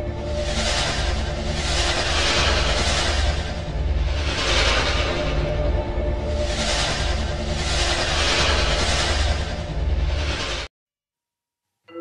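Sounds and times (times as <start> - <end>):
loud rushing noise: 0.0 - 10.7
low pulsing rumble: 0.0 - 10.7.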